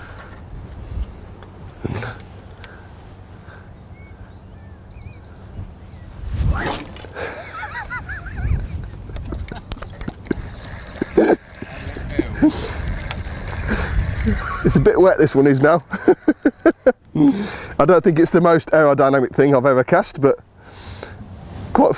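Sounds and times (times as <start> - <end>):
wind rumbling on microphone: 0.0 - 2.0, 3.7 - 15.4
fishing rod swishing: 6.2 - 7.5.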